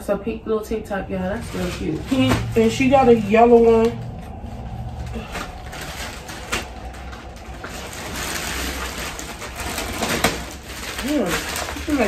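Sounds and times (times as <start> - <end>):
plastic bags rustling and crinkling: 1.1 - 12.0.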